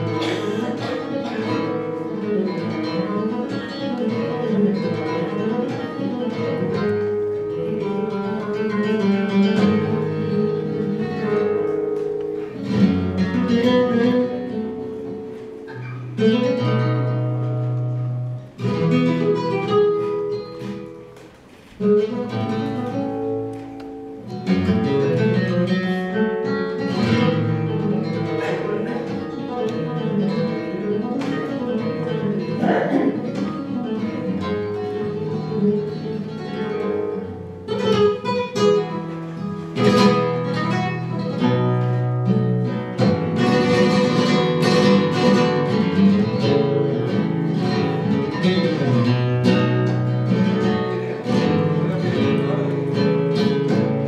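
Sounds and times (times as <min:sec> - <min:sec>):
flamenco guitar: 0:00.0 - 0:54.0.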